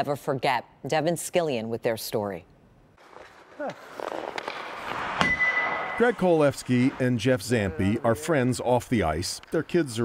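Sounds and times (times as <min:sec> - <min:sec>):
skates scraping ice: 0:03.0 - 0:10.0.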